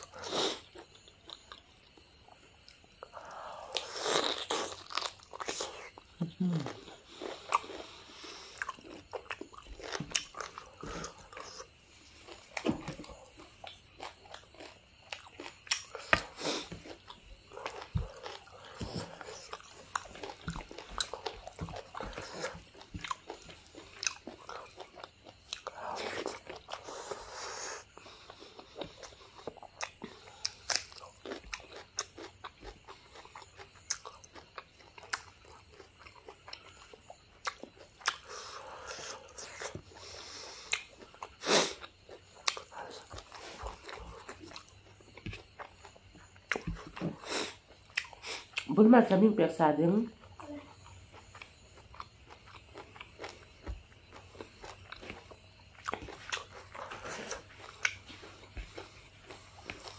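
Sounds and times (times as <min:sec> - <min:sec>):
person chewing and smacking: 0:00.0 - 0:03.1, 0:03.7 - 0:48.7, 0:50.2 - 0:59.9.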